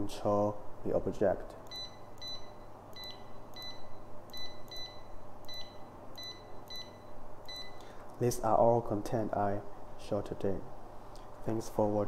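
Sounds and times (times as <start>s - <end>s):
faint low hum: 0.0s - 12.0s
short high electronic beeps: 1.7s - 7.8s.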